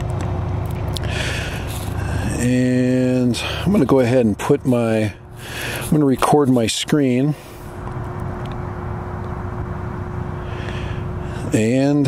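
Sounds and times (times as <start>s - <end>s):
drone propellers humming: 0.0s - 12.0s.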